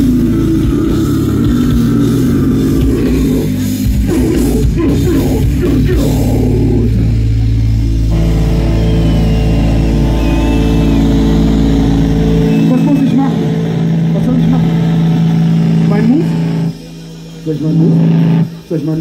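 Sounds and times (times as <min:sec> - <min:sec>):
deep bass note: 0:00.0 - 0:18.8
electric guitar drone: 0:00.0 - 0:19.0
held guitar chord: 0:06.5 - 0:17.2.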